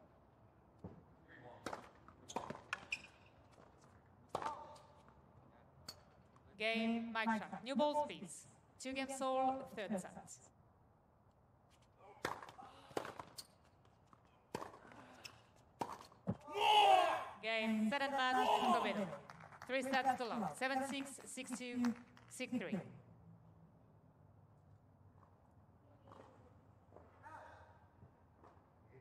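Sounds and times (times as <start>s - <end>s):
tennis ball bouncing on court: 1.6s - 4.8s, 12.2s - 16.5s
tennis racket hitting ball: 4.3s - 4.8s, 12.2s - 13.4s, 14.5s - 16.5s.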